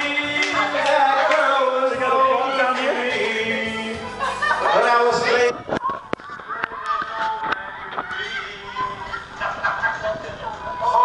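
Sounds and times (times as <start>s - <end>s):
man's voice through microphone: 4.6s - 5.7s.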